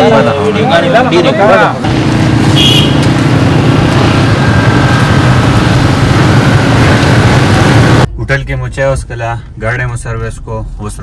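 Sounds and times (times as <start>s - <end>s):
car engine running: 1.6s - 8.1s.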